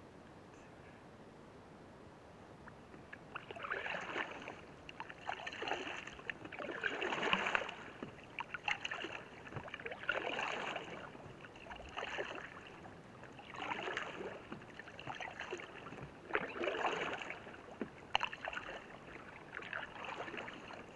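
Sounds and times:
paddle splashing water: 0:02.7 - 0:20.9.

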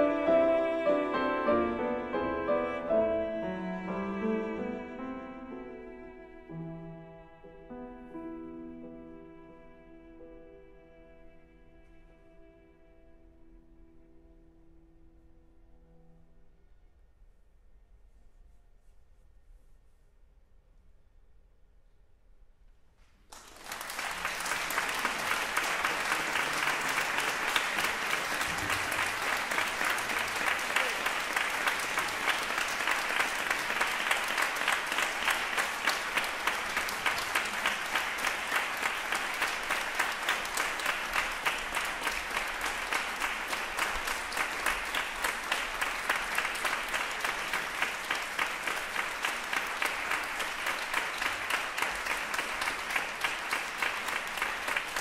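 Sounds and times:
audience applauding: 0:23.3 - 0:55.0.

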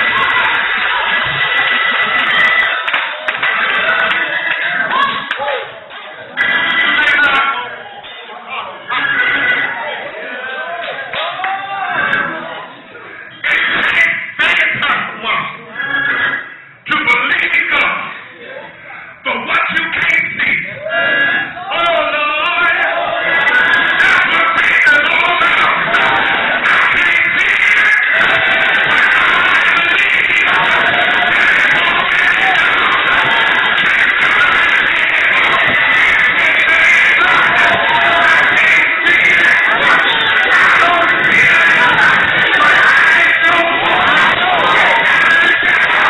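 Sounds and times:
congregation noise: 0:00.0 - 0:46.0
man singing into a microphone: 0:23.5 - 0:46.0.

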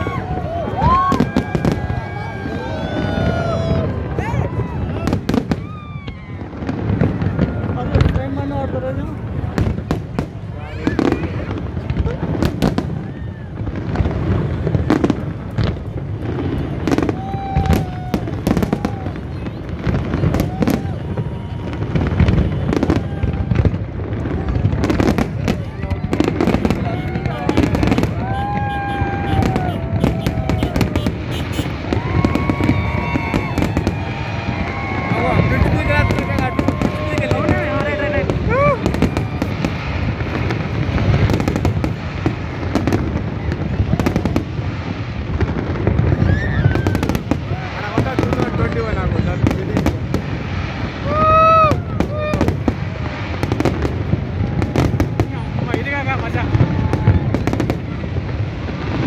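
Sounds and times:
crowd shouting: 0:00.0 - 0:59.0
fireworks bangs and crackles: 0:00.0 - 0:59.0.

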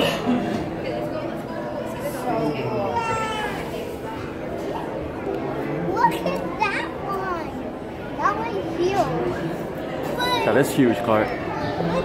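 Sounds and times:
murmur of voices in echoing hall: 0:00.0 - 0:12.0
children calling out excitedly: 0:10.0 - 0:10.6.

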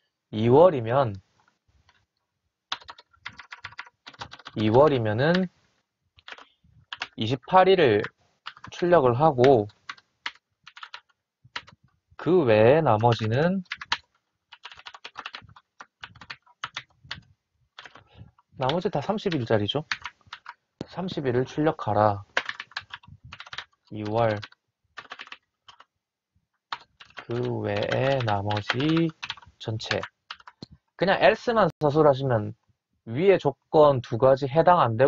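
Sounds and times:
typing on computer keyboard: 0:02.7 - 0:05.5, 0:06.2 - 0:07.2, 0:08.0 - 0:08.8, 0:09.4 - 0:11.8, 0:13.0 - 0:20.6, 0:22.3 - 0:25.9, 0:26.7 - 0:30.7.

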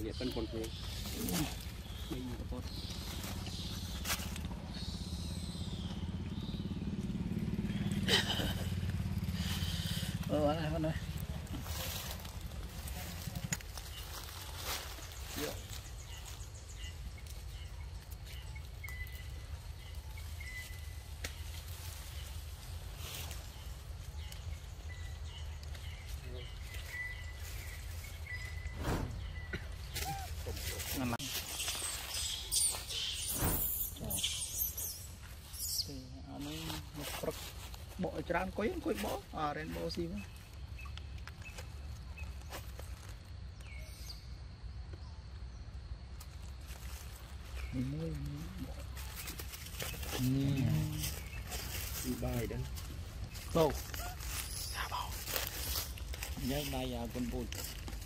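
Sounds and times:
small engine rumbling: 0:00.0 - 0:58.0
thin bird chirps: 0:23.4 - 0:36.1.

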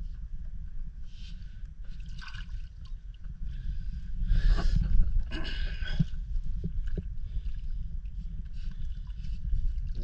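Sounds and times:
low rumble of water: 0:00.0 - 0:10.0.

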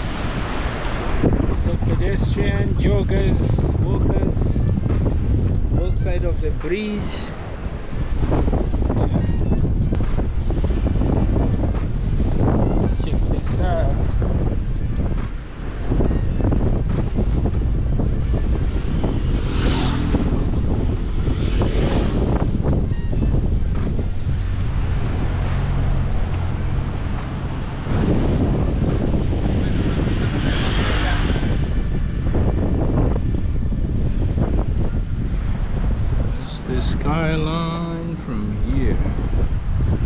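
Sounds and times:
vehicles passing: 0:00.0 - 0:40.0
wind buffeting microphone: 0:00.0 - 0:40.0.

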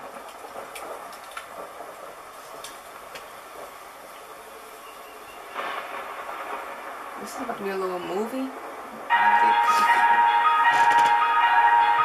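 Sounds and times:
faint scattered clicks: 0:00.2 - 0:01.7, 0:02.5 - 0:03.7.

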